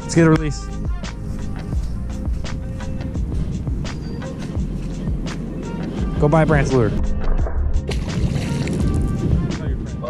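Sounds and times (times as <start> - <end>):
background music with steady beat: 0.0 - 10.0
fish splashing into water: 7.9 - 9.0.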